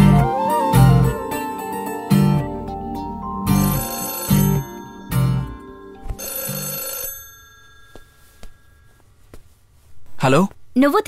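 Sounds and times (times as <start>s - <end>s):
melodic phone ringtone: 3.4s - 9.0s.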